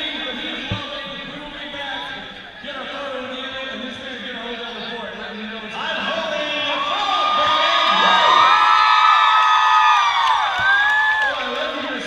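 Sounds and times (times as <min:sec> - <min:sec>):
audience cheering and screaming: 0:06.6 - 0:11.6.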